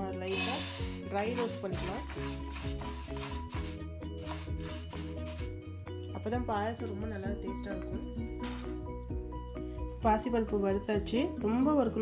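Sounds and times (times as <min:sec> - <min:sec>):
background music: 0:00.0 - 0:12.0
wooden spatula scraping a pan: 0:00.4 - 0:05.5.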